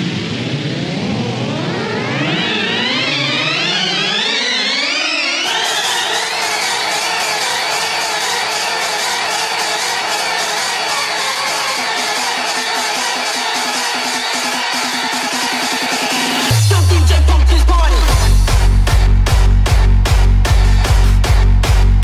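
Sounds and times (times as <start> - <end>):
rising synth sweeps: 0.0 - 19.8
electronic dance music: 0.0 - 22.0
low pulsing beat: 16.5 - 22.0.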